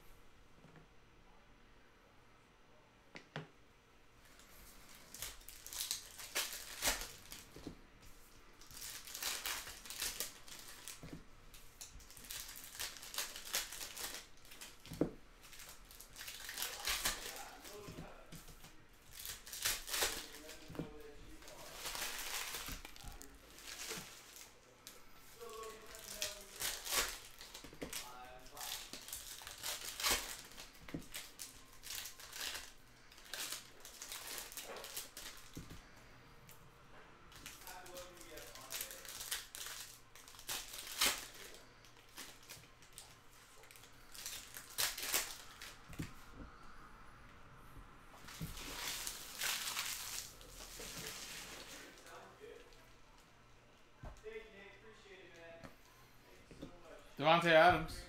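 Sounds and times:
foil wrappers crinkling and tearing: 0:04.4 - 0:07.7, 0:08.6 - 0:36.0, 0:37.3 - 0:46.1, 0:48.2 - 0:52.8.

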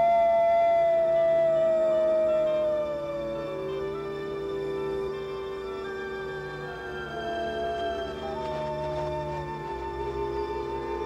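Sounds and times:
faint steady tones: 0:00.0 - 0:11.0
wolf howling: 0:00.0 - 0:11.0.

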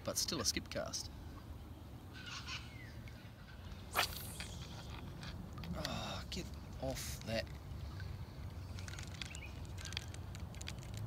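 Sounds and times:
bird calling: 0:01.2 - 0:05.3.

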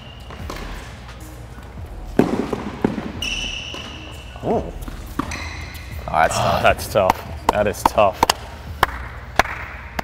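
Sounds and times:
rackets hitting tennis ball: 0:02.2 - 0:04.1, 0:04.9 - 0:06.0, 0:06.9 - 0:10.0
shoe squeak on court: 0:03.1 - 0:04.5, 0:05.2 - 0:06.0.

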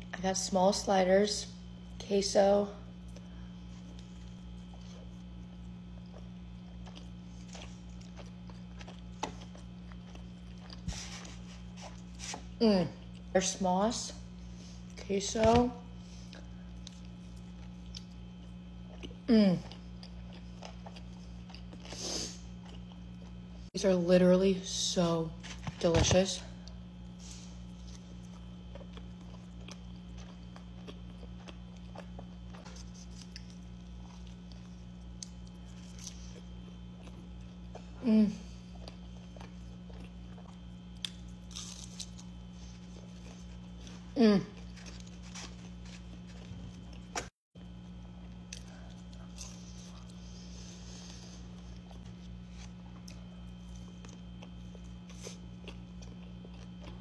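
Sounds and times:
low steady hum: 0:00.0 - 0:57.0
person chewing food: 0:03.0 - 0:13.3, 0:16.1 - 0:23.6, 0:26.6 - 0:57.0.

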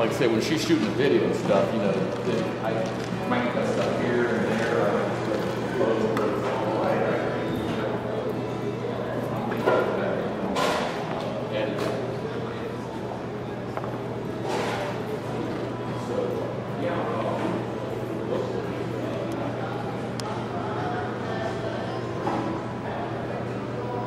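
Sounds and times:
indistinct voices in echoing hall: 0:00.0 - 0:24.0.

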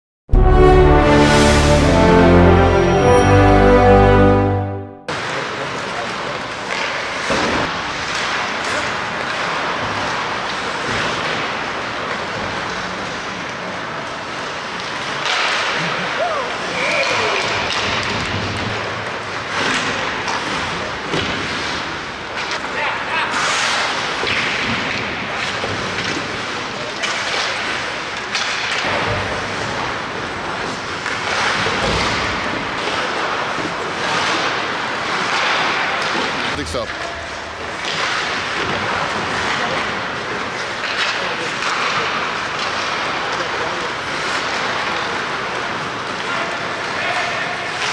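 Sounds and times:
hockey sticks clacking: 0:14.3 - 0:16.2, 0:17.0 - 0:47.9.

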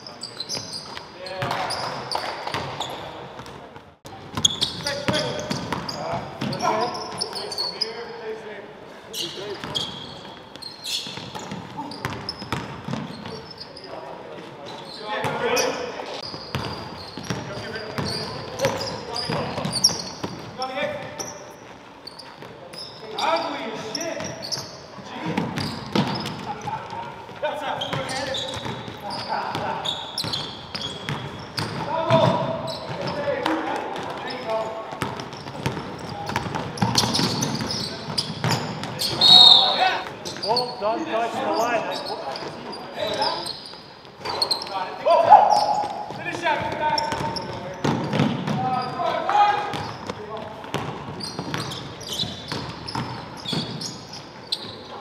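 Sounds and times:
players calling out: 0:35.4 - 0:50.2.

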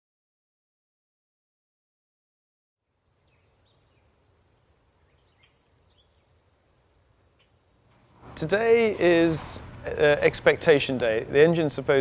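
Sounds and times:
insects chirring: 0:02.8 - 0:12.0.

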